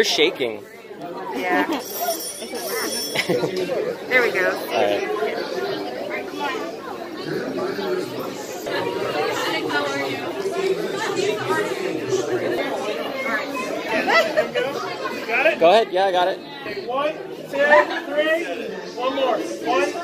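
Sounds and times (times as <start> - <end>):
indistinct chatter of people: 0.0 - 20.0.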